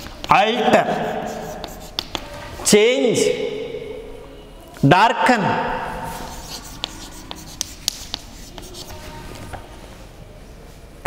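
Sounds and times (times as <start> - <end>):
chalk writing on blackboard: 0.0 - 2.3, 6.0 - 9.2.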